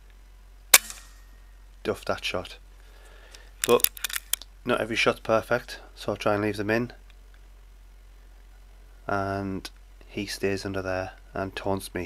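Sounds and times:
air rifle shot: 0.8 - 1.2.

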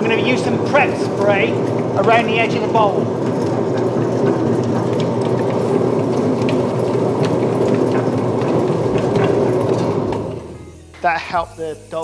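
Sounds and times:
dough mixer running: 0.0 - 10.6.

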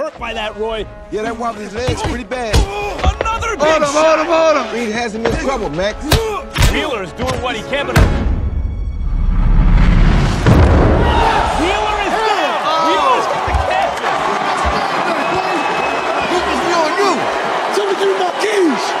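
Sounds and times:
crowd shouting and cheering: 0.0 - 8.0, 10.5 - 19.0.

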